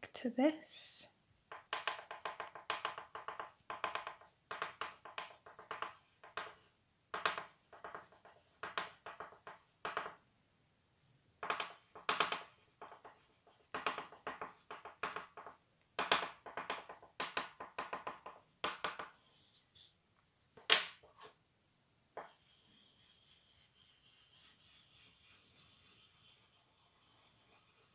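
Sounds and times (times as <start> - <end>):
oil pastel scratching on paper: 1.8 - 10.2, 11.0 - 15.6, 16.2 - 20.0, 22.2 - 27.9.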